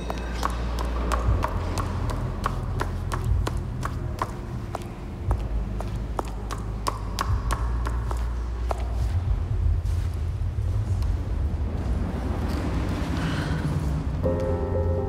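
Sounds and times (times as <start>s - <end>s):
footsteps on stone stairs: 0.0s - 10.2s
steady low hum: 0.0s - 15.0s.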